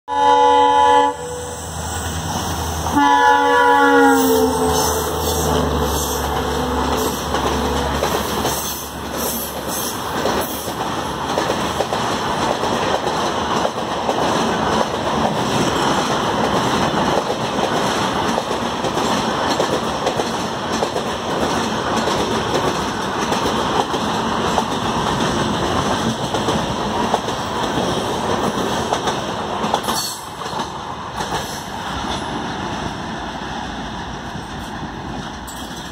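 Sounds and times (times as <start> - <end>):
train horn blast: 0.1 - 1.7, 2.9 - 8.1
diesel locomotive engine rumble: 0.1 - 35.9
train wheels clattering over rails: 4.7 - 35.9.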